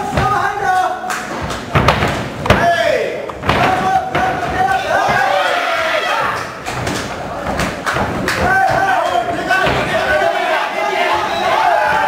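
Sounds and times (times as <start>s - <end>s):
people shouting: 2.6s - 7.5s, 8.2s - 12.0s.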